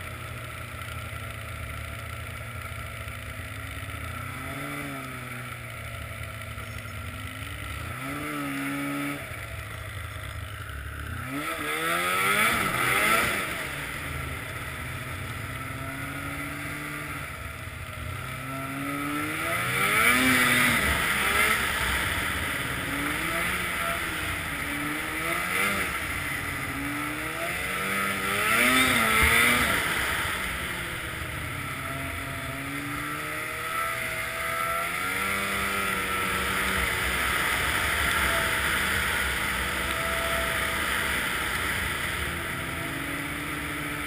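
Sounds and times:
snowmobile engine revving: 0.0 - 44.0.

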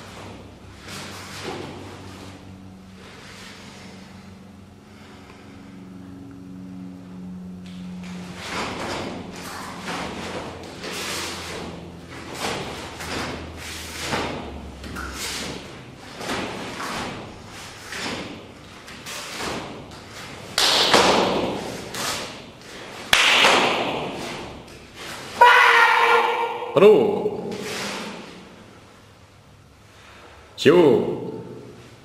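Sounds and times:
bare feet stamping on foam mats: 18.2 - 22.0.

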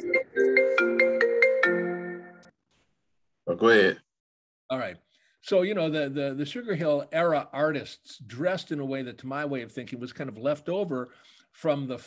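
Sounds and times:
marimba-like phone ringtone: 0.0 - 2.4
conversation: 3.5 - 12.0.

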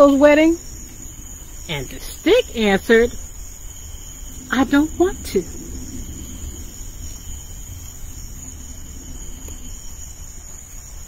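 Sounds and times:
crickets chirping: 0.0 - 11.0
low background rumble: 0.0 - 11.0.

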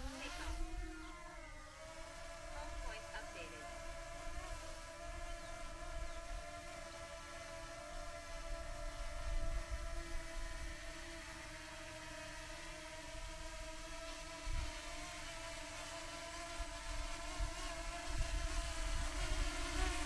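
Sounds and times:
drone propellers whining: 0.0 - 7.0
wind rumbling on microphone: 8.6 - 10.8, 17.4 - 20.0.

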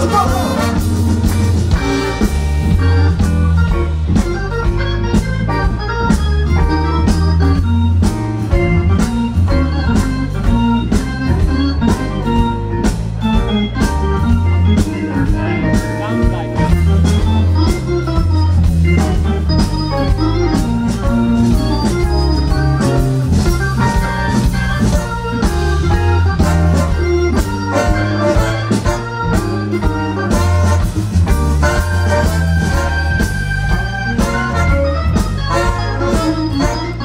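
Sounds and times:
drums keeping a steady beat: 0.0 - 37.0
electric bass: 0.0 - 37.0
organ solo: 0.0 - 37.0.

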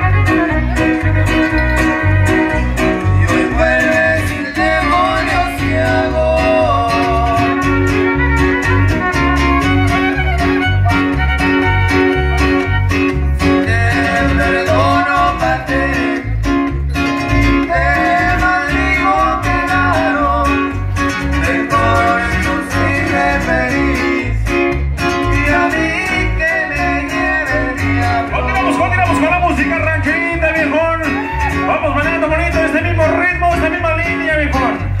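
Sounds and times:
fiddle melody: 0.0 - 23.9
pulsing bass beat: 0.0 - 35.0
strummed guitars: 0.0 - 35.0.

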